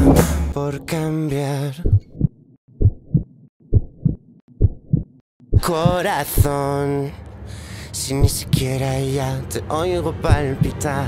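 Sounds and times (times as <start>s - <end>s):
heartbeat thuds: 1.8s - 6.6s, 8.2s - 8.7s, 10.3s - 10.8s.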